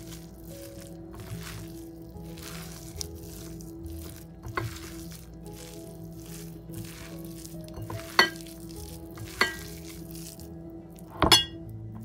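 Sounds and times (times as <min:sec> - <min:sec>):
hand mashing food in bowl: 0:00.0 - 0:11.6
glass bowl clinks: 0:11.2 - 0:11.6.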